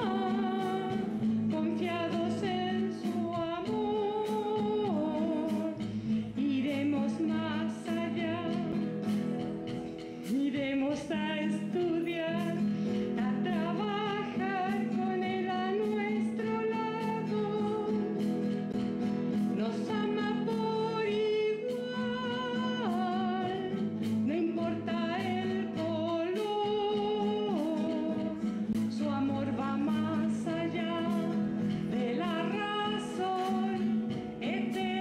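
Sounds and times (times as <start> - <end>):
person singing: 0.0 - 8.9, 10.2 - 18.3, 19.3 - 35.0
acoustic guitar: 0.0 - 35.0.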